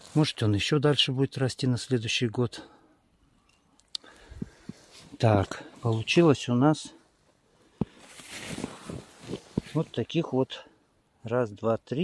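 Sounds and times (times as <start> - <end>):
cloth rustling: 7.7 - 10.0.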